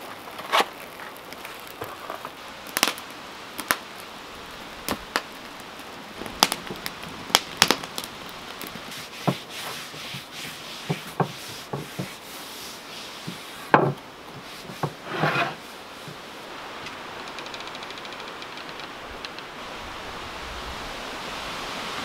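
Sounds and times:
steady hiss: 0.0 - 22.0
cloth rubbing on board: 8.9 - 13.8, 14.4 - 16.2
wooden board knocking on counter: 13.8 - 14.0.

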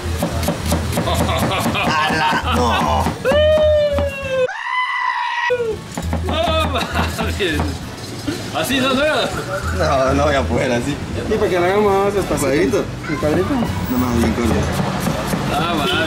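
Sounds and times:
people laughing: 0.9 - 4.5, 6.3 - 7.6.

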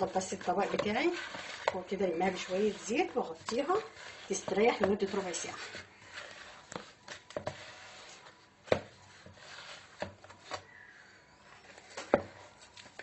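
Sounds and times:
hands squishing dough: 0.0 - 10.9.

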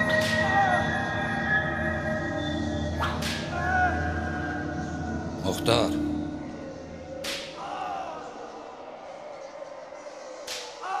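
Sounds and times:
whip cracks: 3.0 - 3.6, 7.2 - 7.7, 10.4 - 10.9.

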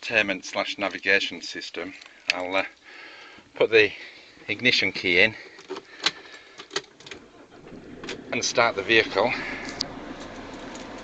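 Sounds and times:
ignition key metallic clicks: 9.6 - 11.0.

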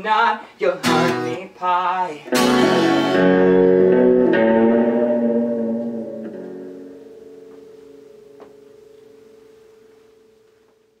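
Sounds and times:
guitar note ringing: 0.8 - 1.4, 2.3 - 11.0.

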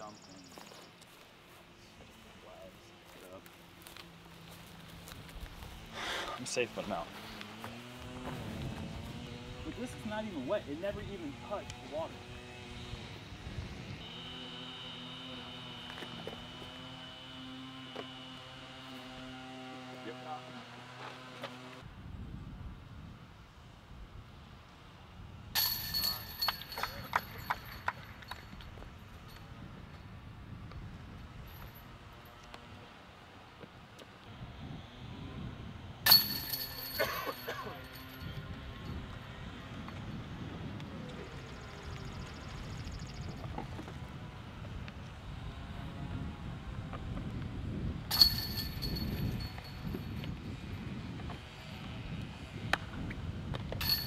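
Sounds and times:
chain rattle: 25.6 - 28.6, 36.1 - 38.4, 48.1 - 50.2, 53.8 - 54.0
disc hitting basket chains: 25.6 - 28.6, 36.1 - 38.5, 48.1 - 50.2, 53.7 - 54.0.

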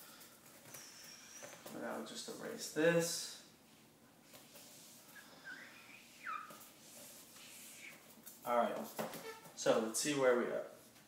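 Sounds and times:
eraser squeaking on whiteboard: 4.5 - 8.1, 9.2 - 9.6.

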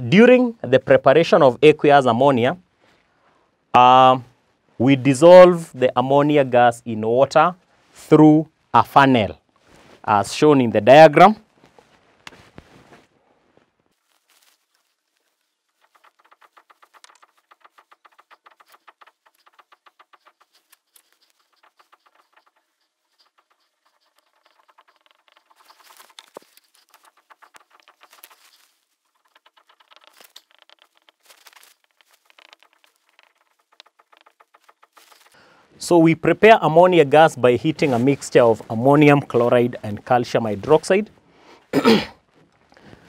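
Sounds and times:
marker squeaking on whiteboard: 14.8 - 35.5.

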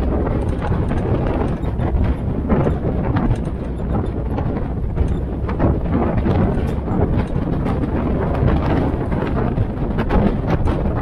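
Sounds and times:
body and wheel rattles: 0.0 - 11.0
vehicle engine and road rumble: 0.0 - 11.0.

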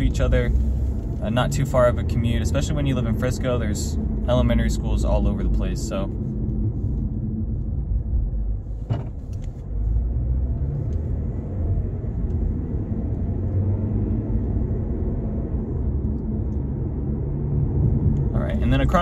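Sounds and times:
car driving low rumble: 0.0 - 19.0.

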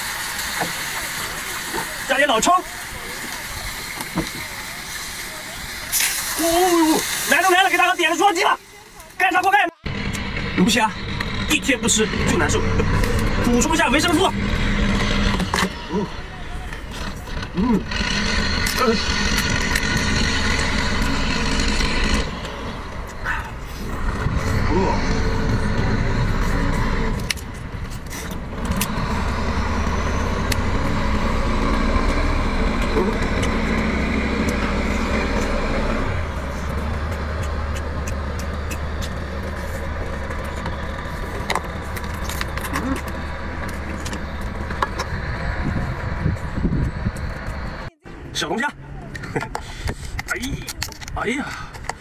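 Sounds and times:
engine running steadily: 0.0 - 52.0
sharp snaps: 37.1 - 39.6.

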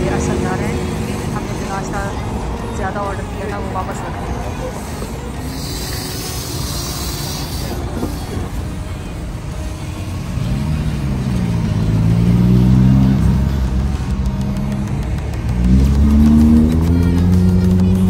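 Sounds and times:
car engine revving: 0.0 - 18.0
car engines accelerating: 0.0 - 18.0
turbocharged car passing: 0.0 - 18.0.

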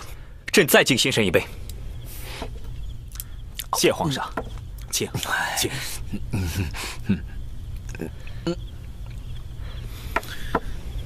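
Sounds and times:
low steady hum: 0.0 - 11.0
cups knocking on wooden table: 4.3 - 4.6, 10.2 - 10.7.

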